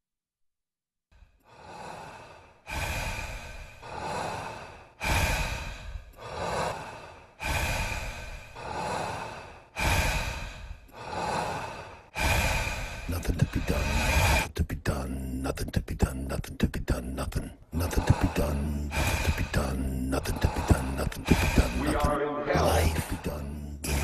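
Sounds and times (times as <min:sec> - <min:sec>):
person breathing heavily: 0:01.3 - 0:24.0.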